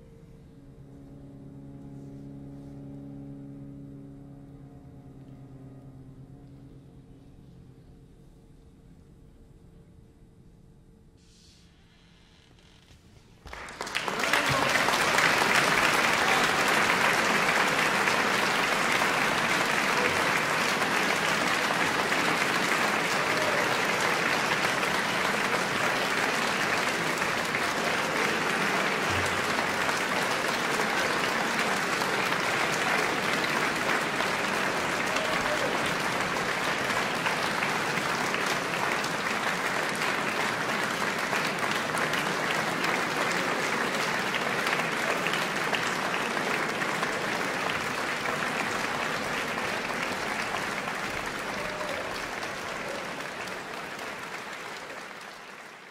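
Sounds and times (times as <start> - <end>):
audience applauding: 13.4 - 55.9.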